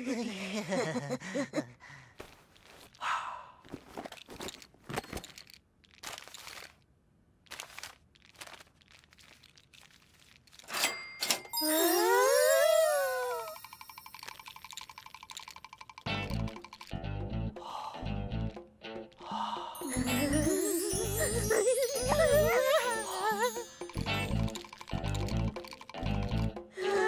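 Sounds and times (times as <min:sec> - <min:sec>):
cartoon clicks and rustles: 0:03.8 - 0:11.6, 0:13.4 - 0:17.0, 0:23.7 - 0:26.6
brief high tone: 0:11.5 - 0:14.0
cartoon voice ooh: 0:11.6 - 0:13.6.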